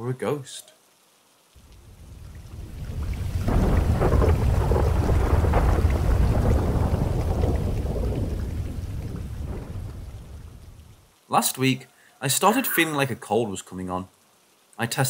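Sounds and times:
rain: 0.0 - 15.0
thunder rolling: 1.6 - 11.0.

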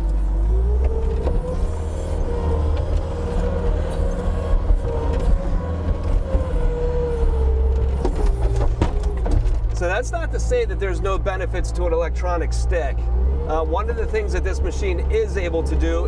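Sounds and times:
loader diesel engine at high revs: 0.0 - 16.0.

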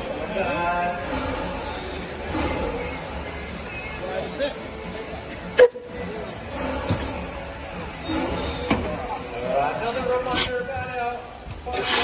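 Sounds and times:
people chattering: 0.0 - 12.0
steam hissing from locomotive: 0.0 - 12.0.

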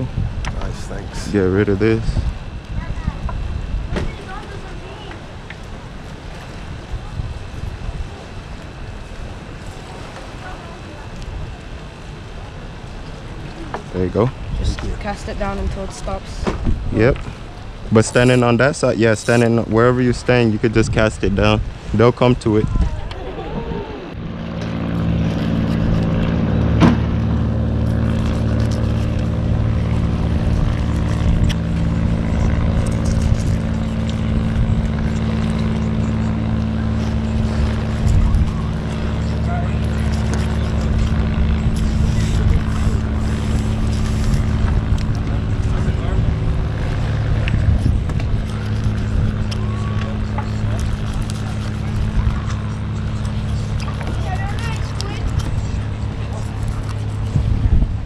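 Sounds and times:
low motor drone: 0.0 - 58.0.

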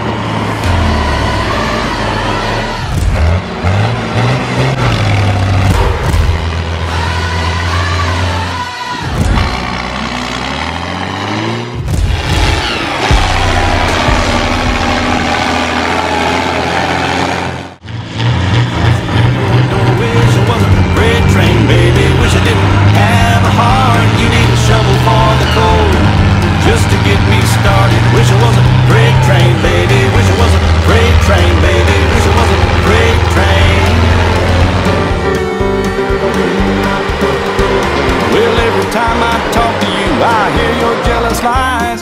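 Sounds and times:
tractor engines revving: 0.0 - 42.0.

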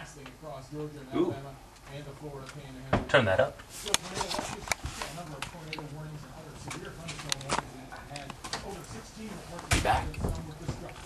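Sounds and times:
muffled television voice: 0.0 - 11.0.

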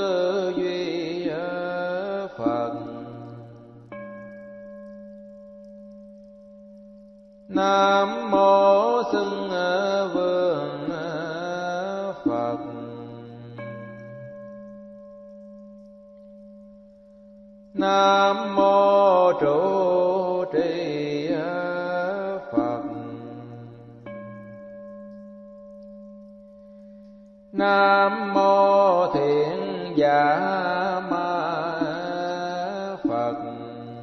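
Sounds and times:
person chanting: 0.0 - 4.3, 7.5 - 14.9, 17.8 - 24.8, 27.5 - 34.0.

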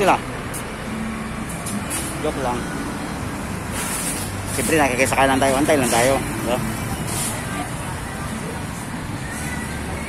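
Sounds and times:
roadside traffic: 0.0 - 10.0.

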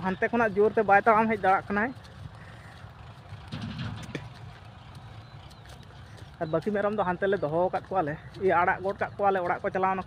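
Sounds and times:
distant tractor engine rumbling: 0.0 - 10.0.

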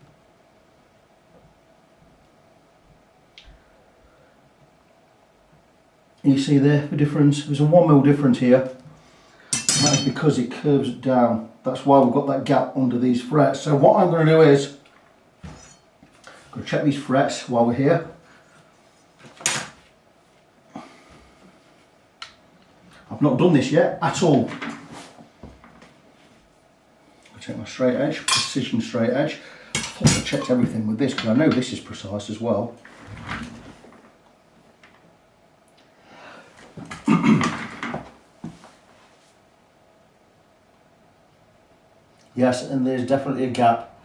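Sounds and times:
faint steady hum: 0.0 - 44.0
shuffling rustle: 24.5 - 26.6, 38.0 - 39.5.

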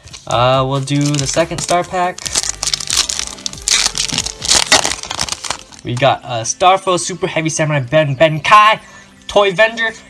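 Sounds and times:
foil wrapper crinkling and tearing: 0.0 - 6.1.

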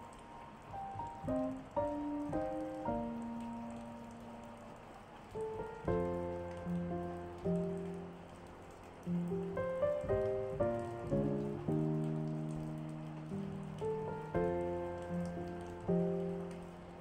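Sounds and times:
calm solo piano music: 0.0 - 17.0
steady rain: 0.0 - 17.0.

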